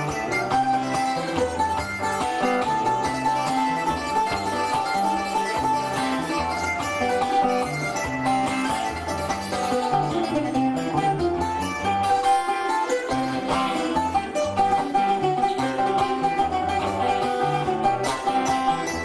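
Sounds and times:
acoustic guitar and plucked strings: 0:00.0 - 0:19.0.

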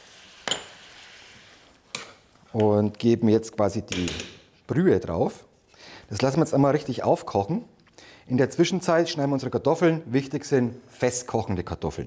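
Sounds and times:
faint sizzle in frying pan: 0:00.0 - 0:01.8.

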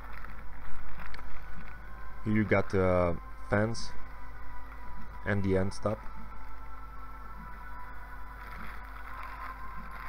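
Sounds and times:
plastic bag rustling: 0:00.0 - 0:03.1, 0:08.4 - 0:10.0.

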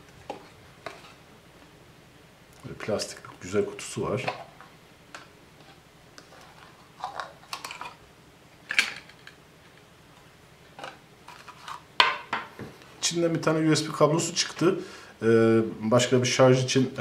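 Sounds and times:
plastic packaging clicks and rustles: 0:06.2 - 0:08.0.

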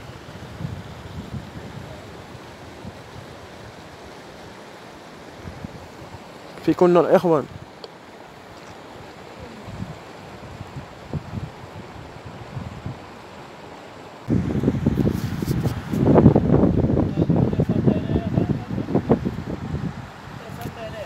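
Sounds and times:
wind buffeting microphone: 0:00.0 - 0:04.6, 0:05.3 - 0:07.8, 0:08.8 - 0:13.2, 0:14.2 - 0:21.0
faint steady hiss: 0:00.0 - 0:21.0.

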